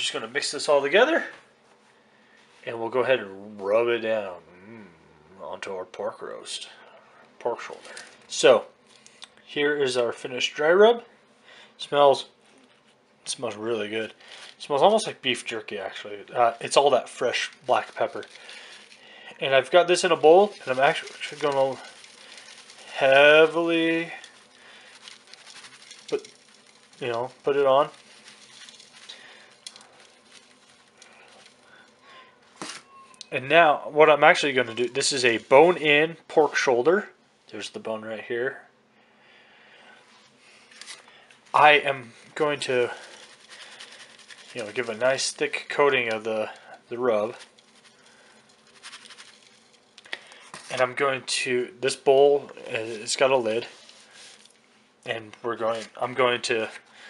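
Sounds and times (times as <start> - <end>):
spice rub pattering onto meat: 14.2 - 32.0, 42.3 - 50.8.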